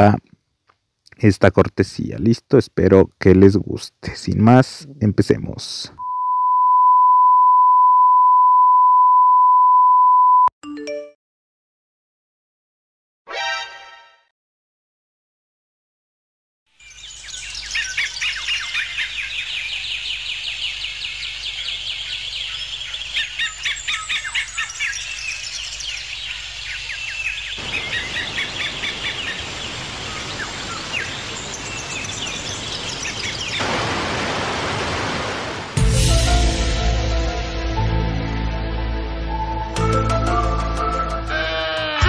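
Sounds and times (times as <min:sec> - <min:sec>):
birds chirping: 0:16.8 - 0:34.3
outdoor ambient noise: 0:16.8 - 0:35.8.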